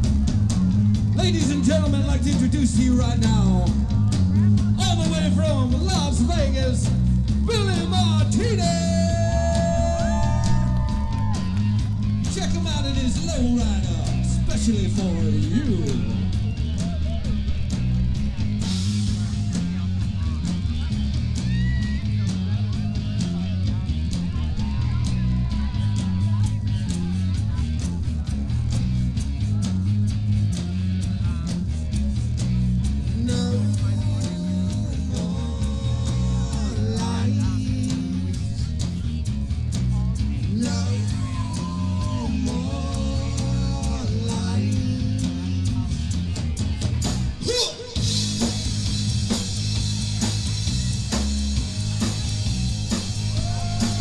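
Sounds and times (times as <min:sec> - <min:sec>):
bass guitar: 0:00.0 - 0:54.0
drums: 0:00.0 - 0:54.0.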